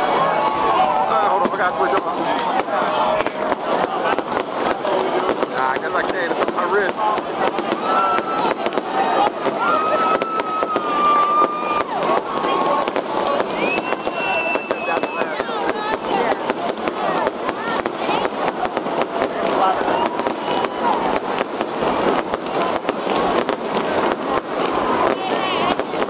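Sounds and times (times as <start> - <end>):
fireworks cracking and popping: 0.0 - 26.0
people's voices: 0.0 - 26.0.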